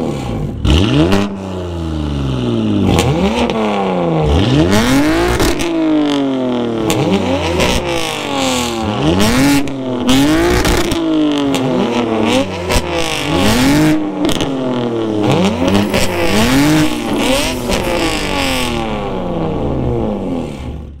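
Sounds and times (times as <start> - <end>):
car engine revving: 0.0 - 21.0
exhaust cracks: 13.0 - 21.0.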